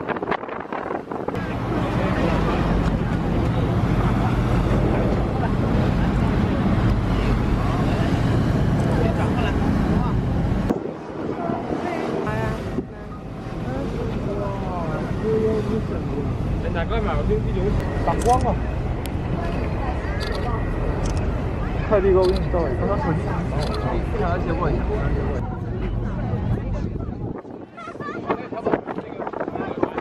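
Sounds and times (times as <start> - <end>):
wind on microphone: 0.0 - 15.0, 23.7 - 30.0
ferry engine drone: 0.4 - 27.4
voices talking: 1.4 - 30.0.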